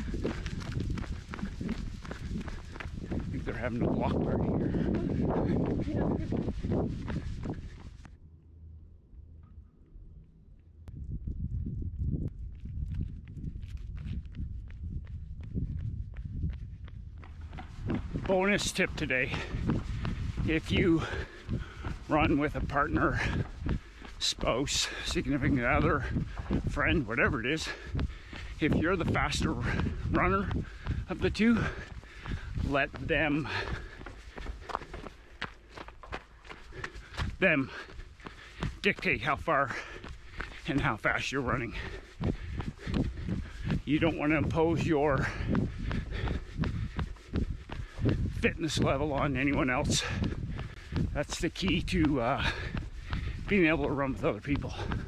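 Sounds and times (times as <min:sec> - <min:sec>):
running footsteps on pavement: 0:00.0 - 0:08.2, 0:11.0 - 0:55.0
low rumble on microphone: 0:00.0 - 0:39.0, 0:41.4 - 0:55.0.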